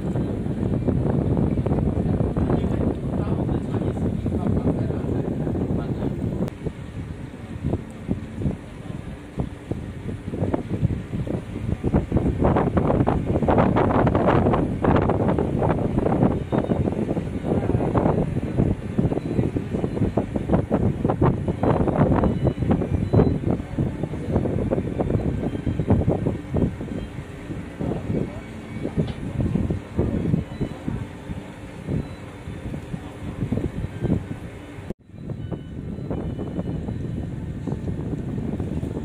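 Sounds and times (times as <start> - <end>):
boat running noise: 0.0 - 39.0
wind buffeting microphone: 0.0 - 39.0
indistinct talk of people: 1.7 - 6.7, 16.5 - 34.9.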